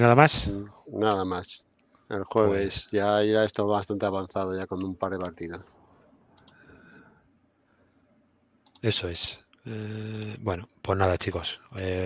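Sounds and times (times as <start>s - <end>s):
faint quick clicks: 6.4s - 6.6s.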